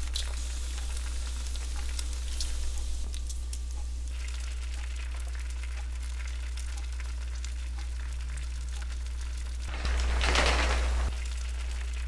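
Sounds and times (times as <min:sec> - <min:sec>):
bacon sizzling in a pan: 0:00.0 - 0:12.0
constant low hum: 0:00.0 - 0:12.0.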